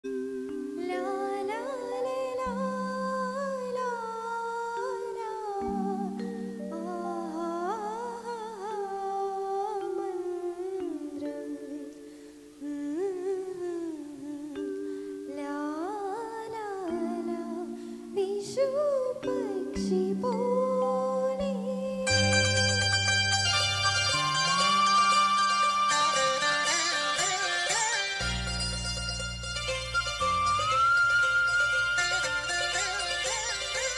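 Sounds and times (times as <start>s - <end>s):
woman singing melody: 0.0s - 23.1s, 24.2s - 28.5s
sustained accompaniment chords: 22.1s - 33.9s.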